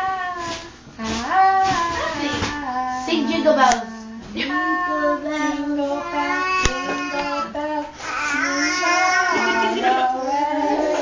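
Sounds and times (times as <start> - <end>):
infant singing held notes: 0.0 - 11.0
wavering voice: 0.0 - 11.0.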